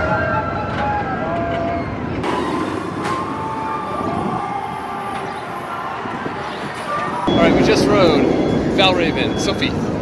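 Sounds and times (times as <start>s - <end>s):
roller coaster train rumble: 0.0s - 10.0s.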